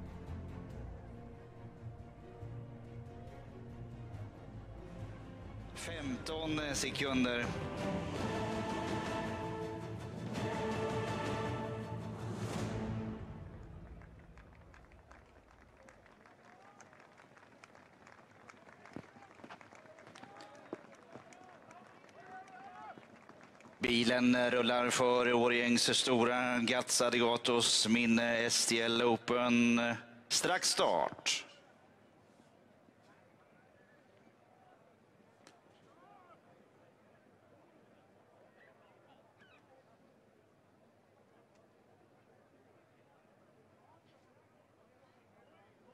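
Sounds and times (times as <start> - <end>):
background music: 0.0 - 15.0.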